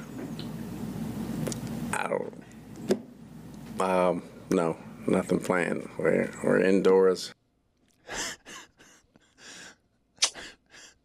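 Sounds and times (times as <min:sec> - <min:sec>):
breathy laughter: 0:08.0 - 0:11.0.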